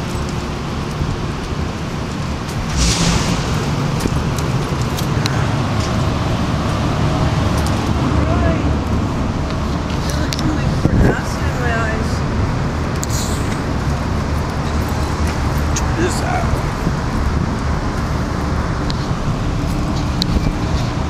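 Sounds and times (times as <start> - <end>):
traffic: 0.0 - 21.0
wind rumble on microphone: 0.0 - 21.0.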